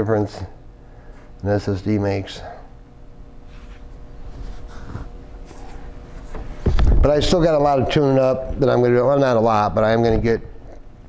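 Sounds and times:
faint steady hum: 0.0s - 11.0s
soft rustles: 3.4s - 7.1s.

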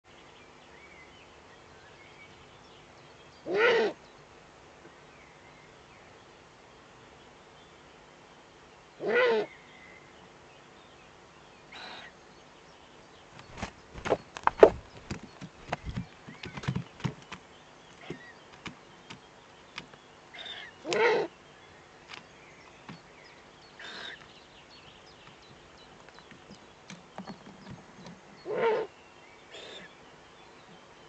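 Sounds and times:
owl chick calling: 3.5s - 4.0s, 11.7s - 12.2s, 20.3s - 21.3s, 23.8s - 24.3s, 28.4s - 28.9s, 29.5s - 30.0s.

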